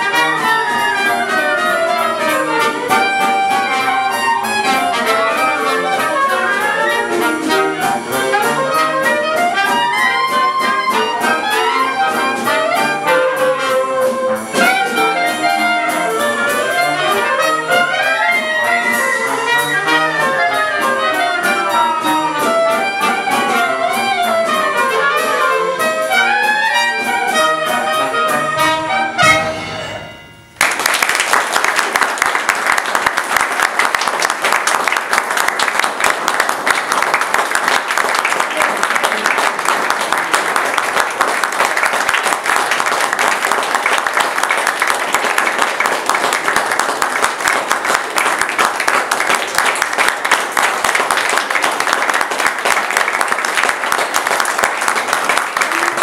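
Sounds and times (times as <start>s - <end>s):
wind band note: 0.0s - 30.6s
audience applause: 30.6s - 56.0s.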